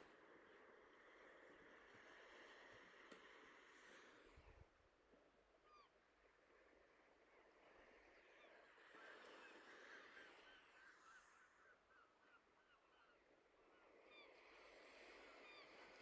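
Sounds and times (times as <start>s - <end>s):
faint bird calls: 5.6s - 6.0s, 7.3s - 16.0s.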